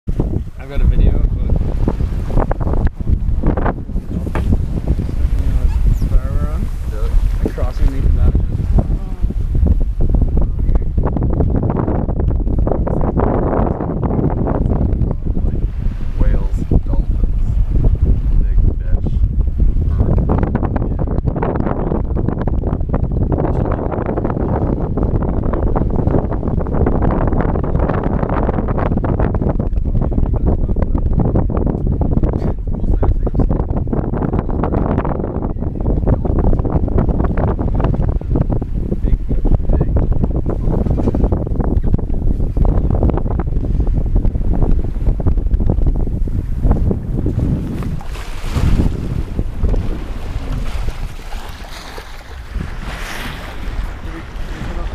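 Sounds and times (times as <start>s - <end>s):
water splashing along hull: 0.0s - 54.9s
wind buffeting microphone: 0.0s - 54.9s.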